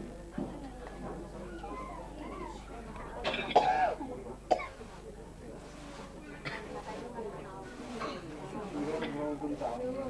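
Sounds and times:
person coughing: 0:03.3 - 0:04.8.

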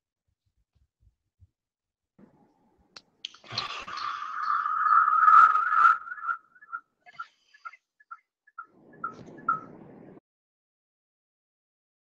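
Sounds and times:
audio feedback squeal: 0:03.9 - 0:07.8.

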